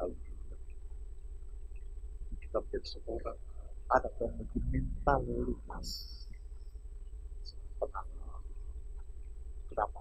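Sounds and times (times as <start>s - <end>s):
man speaking: 0.0s - 0.2s, 2.4s - 6.2s, 7.8s - 8.4s, 9.8s - 10.0s
steady low hum: 0.0s - 10.0s
faint high-pitched tone: 2.4s - 6.4s.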